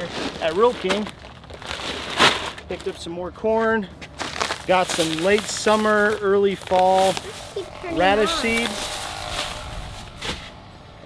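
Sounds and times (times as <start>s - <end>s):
plastic bag rustling: 0.0s - 3.1s, 4.2s - 10.4s
traffic rumble: 0.0s - 11.0s.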